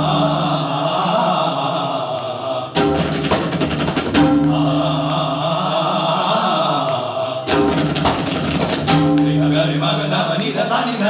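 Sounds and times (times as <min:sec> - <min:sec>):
men chanting: 0:00.0 - 0:03.3, 0:04.2 - 0:08.0, 0:09.0 - 0:11.0
tabla drums: 0:02.8 - 0:05.5, 0:07.5 - 0:10.8.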